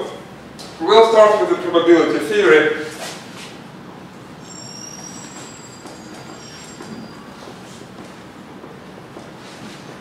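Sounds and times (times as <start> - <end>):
marker squeaking on whiteboard: 4.4 - 7.9.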